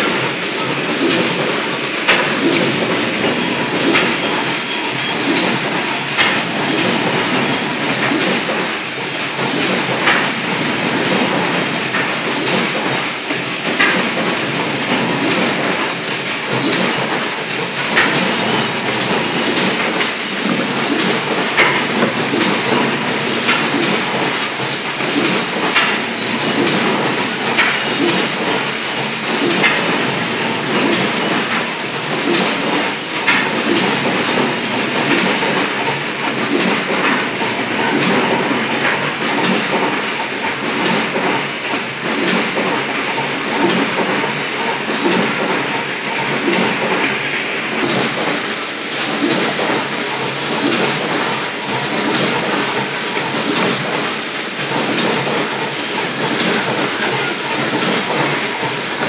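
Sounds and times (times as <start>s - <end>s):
creasing machine clatter: 0.0s - 59.0s.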